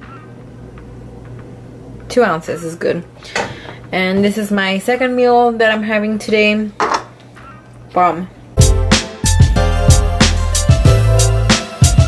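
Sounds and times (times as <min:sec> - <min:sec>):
steady low hum: 0:00.0 - 0:08.9.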